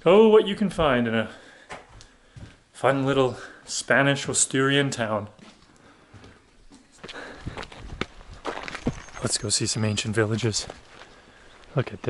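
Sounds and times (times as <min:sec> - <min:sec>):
footsteps on stone path: 0:00.7 - 0:02.6, 0:05.3 - 0:12.0.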